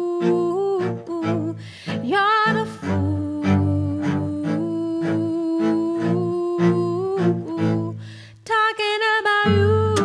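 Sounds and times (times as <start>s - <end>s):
bowed cello low notes: 0.0s - 8.1s.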